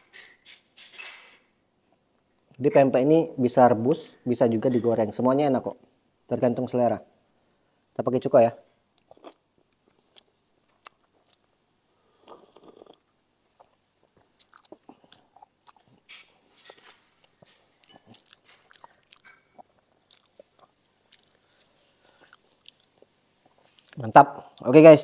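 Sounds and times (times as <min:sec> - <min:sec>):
man chewing: 0:09.0 - 0:24.6
mouth clicks and smacks: 0:12.2 - 0:24.7.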